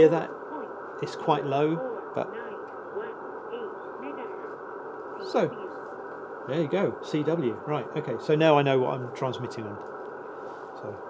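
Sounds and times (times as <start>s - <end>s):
radio voice announcement: 0.0s - 9.8s
receiver hiss: 0.0s - 11.0s.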